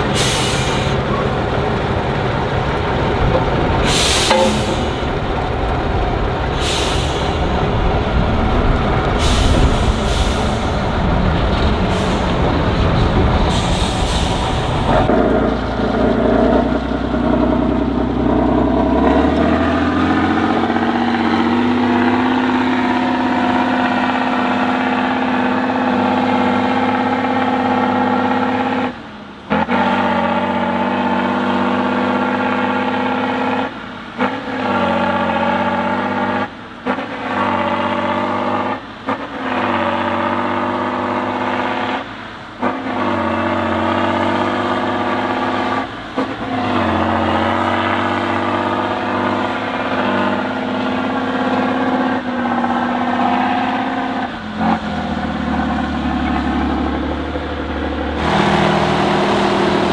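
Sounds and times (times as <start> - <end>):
truck diesel engine revving: 0.0 - 59.9.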